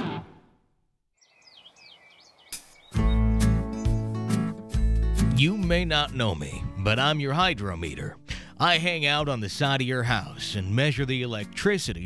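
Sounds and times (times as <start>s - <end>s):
birds chirping: 1.2s - 4.4s.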